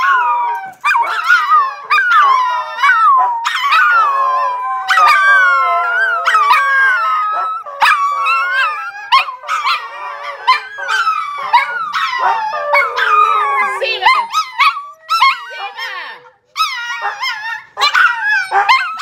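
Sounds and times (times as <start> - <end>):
dogs howling together: 0.0 - 19.0.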